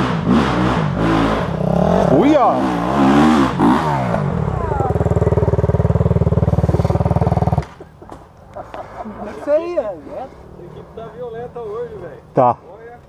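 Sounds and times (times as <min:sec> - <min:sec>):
dirt bike engine revving: 0:00.0 - 0:07.8.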